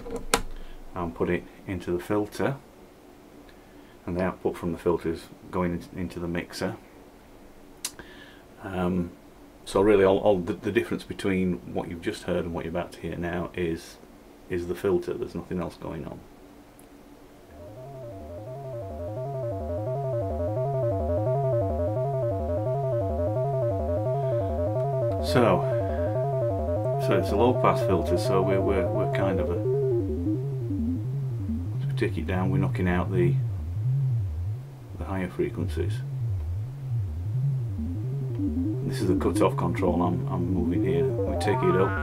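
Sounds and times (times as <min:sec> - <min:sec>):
synthesizer stepped note sequence: 0:17.5 - 0:42.0.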